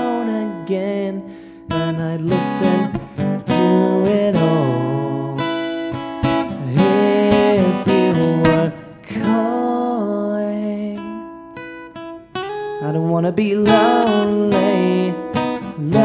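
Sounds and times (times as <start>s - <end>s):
strummed acoustic guitar: 0.0s - 16.0s.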